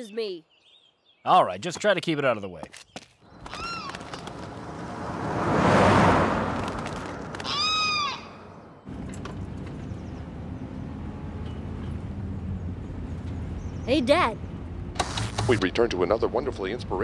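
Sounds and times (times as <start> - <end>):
bird calling: 2.8 - 4.6, 7.0 - 8.9
car engine humming: 3.3 - 17.0.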